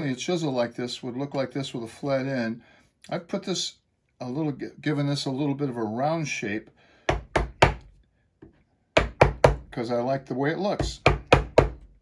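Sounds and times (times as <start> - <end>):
chisel knocking into wood: 7.1 - 9.7, 10.8 - 11.9.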